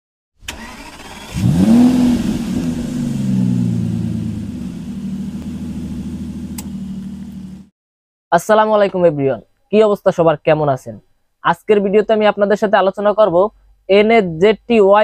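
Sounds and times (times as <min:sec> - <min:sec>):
car engine starting and idling: 0:00.4 - 0:07.7
ignition click: 0:00.5 - 0:01.7, 0:06.4 - 0:07.6.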